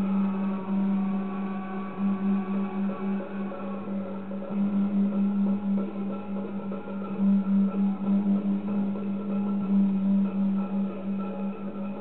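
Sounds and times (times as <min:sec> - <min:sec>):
steady low drone: 0:00.0 - 0:12.0.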